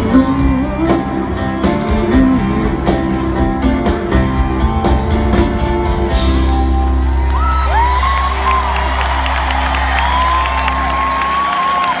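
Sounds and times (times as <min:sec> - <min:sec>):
crowd cheering and whistling: 0:06.4 - 0:12.0.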